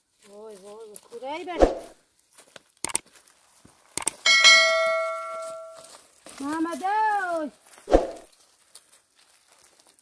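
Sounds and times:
notification bell chime: 4.3 - 5.8.

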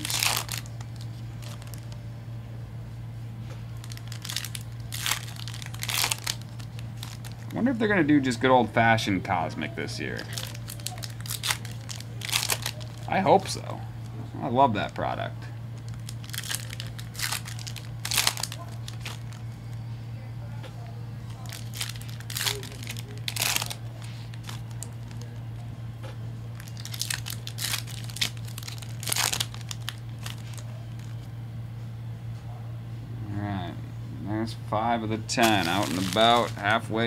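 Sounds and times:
card pack wrappers crinkling: 0.0 - 2.0, 3.8 - 7.8, 10.0 - 13.8, 15.8 - 19.5, 21.3 - 25.6, 26.5 - 31.2, 35.4 - 36.8.

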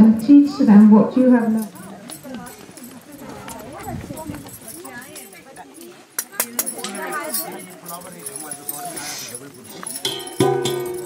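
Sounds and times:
women talking: 0.0 - 7.8.

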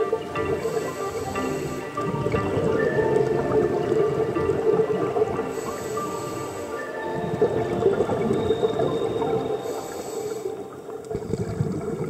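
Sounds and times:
underwater bubbles gurgling: 0.0 - 12.0.

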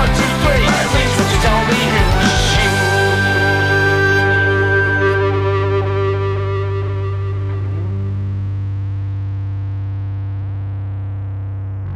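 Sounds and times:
guitar upward slide: 0.0 - 8.7
distorted rock band chord: 0.0 - 9.8
steady low note: 0.0 - 11.9.

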